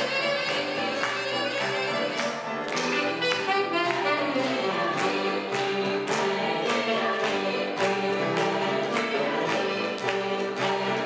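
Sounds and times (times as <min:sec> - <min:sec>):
saxophone melody: 0:00.0 - 0:05.7
grand piano accompaniment: 0:00.0 - 0:11.0.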